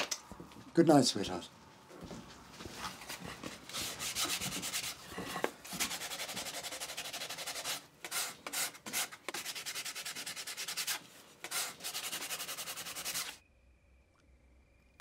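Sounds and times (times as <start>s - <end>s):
sandpaper rubbing on wood: 3.1s - 13.4s.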